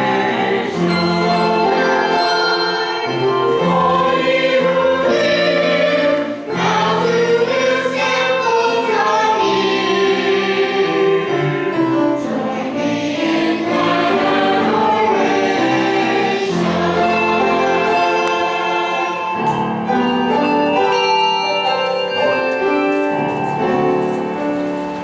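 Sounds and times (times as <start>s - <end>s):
church choir singing: 0.0s - 25.0s.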